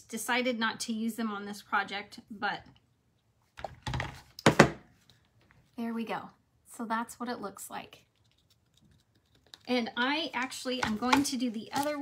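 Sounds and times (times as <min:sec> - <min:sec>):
loud thunk of object set down: 0:03.6 - 0:04.8.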